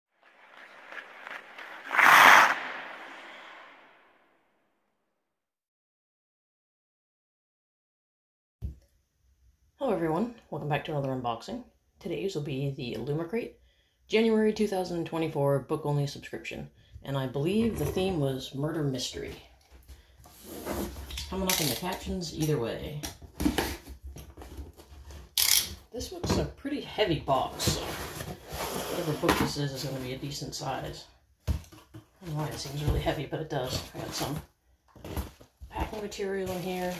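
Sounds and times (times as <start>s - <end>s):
rising noisy swell: 0.7s - 4.2s
loud burst: 1.5s - 4.2s.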